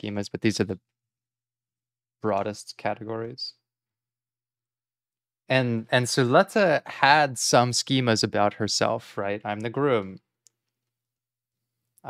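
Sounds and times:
man speaking: 0.0 - 0.9, 2.2 - 3.6, 5.5 - 10.3.

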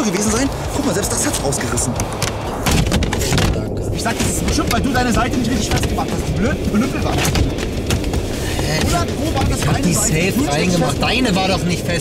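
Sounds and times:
wind rumbling on microphone: 0.0 - 12.0
shelter rustling and knocking: 2.1 - 4.9.

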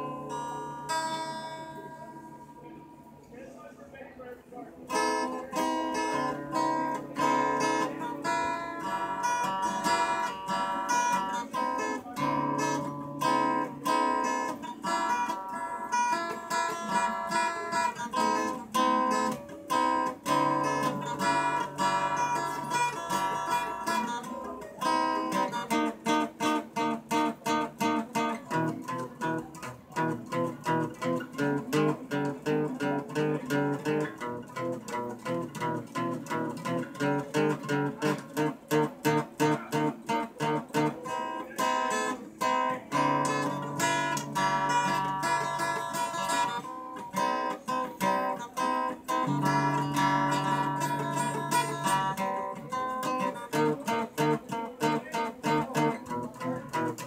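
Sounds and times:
solo acoustic guitar: 0.0 - 57.0.

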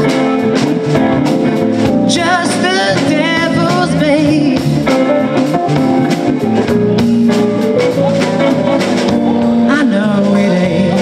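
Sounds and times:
drum kit beat: 0.0 - 11.0
electric guitar notes: 0.0 - 11.0.

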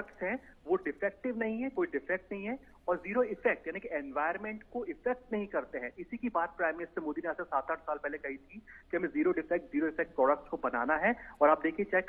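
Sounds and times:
news commentary speech: 0.0 - 12.0.

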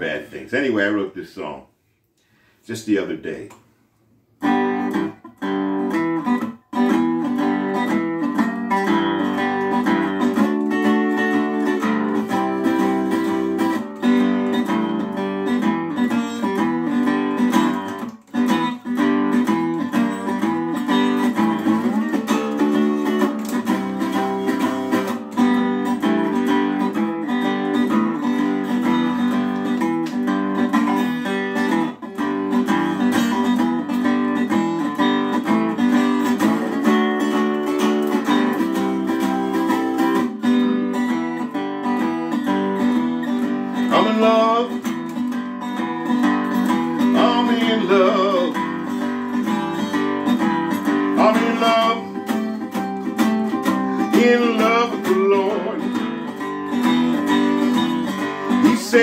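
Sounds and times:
resonator guitar picked pattern: 2.3 - 59.0.

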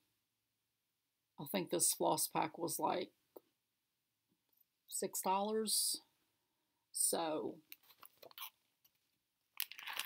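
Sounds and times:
plastic bag crinkling: 9.6 - 10.0.

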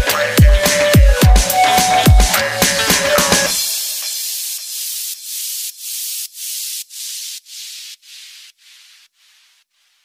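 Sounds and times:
pulsing electronic hiss: 1.6 - 10.0.

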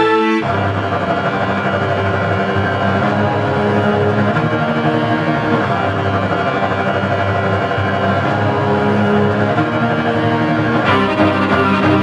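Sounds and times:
violas bowing sustained notes: 0.0 - 12.0.

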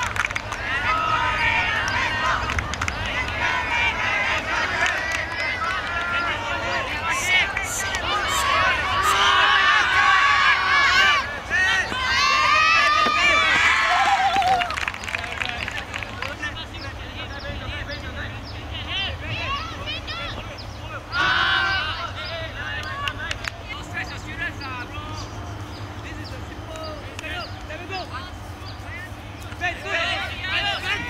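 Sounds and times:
players shouting and cheering: 0.0 - 31.0.

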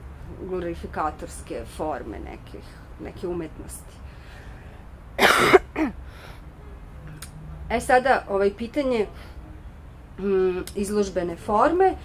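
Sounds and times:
person coughing: 5.2 - 6.0.

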